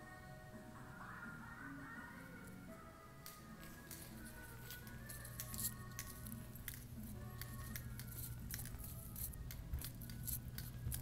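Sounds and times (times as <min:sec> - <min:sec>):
faint music-like tones: 0:00.0 - 0:11.0.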